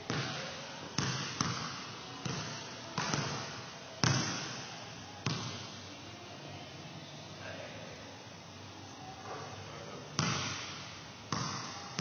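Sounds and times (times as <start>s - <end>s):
basketball bouncing on gym floor: 0.1s - 5.7s, 10.2s - 12.0s.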